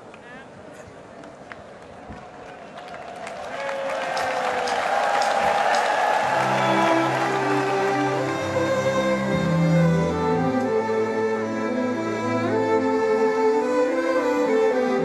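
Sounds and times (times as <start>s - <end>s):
people clapping: 0.0s - 9.9s
faint crowd noise: 0.0s - 15.0s
orchestral strings playing: 6.2s - 15.0s.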